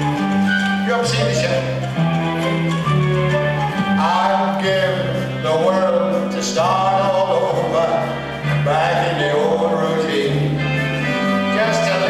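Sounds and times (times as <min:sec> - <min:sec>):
live band playing: 0:00.0 - 0:12.0
man singing: 0:00.8 - 0:01.9, 0:03.8 - 0:12.0.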